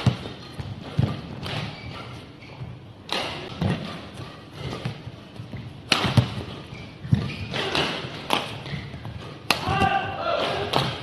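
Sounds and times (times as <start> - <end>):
racket hitting shuttlecock: 0.0 - 2.2, 3.0 - 11.0
footwork rumbling on court: 0.0 - 11.0.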